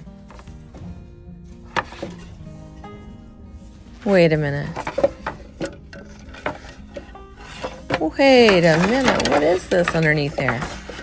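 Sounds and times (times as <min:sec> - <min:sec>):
faint background music: 0:00.0 - 0:11.0
wood knocking and rubbing on wood: 0:01.7 - 0:02.4, 0:04.7 - 0:11.0.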